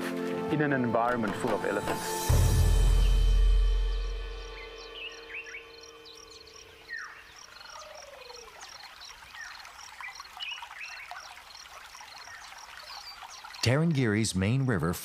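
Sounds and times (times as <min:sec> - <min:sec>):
background music: 0:00.0 - 0:06.7
bird calls and whistles: 0:03.8 - 0:11.4
high repeating bird chirp: 0:03.9 - 0:08.5.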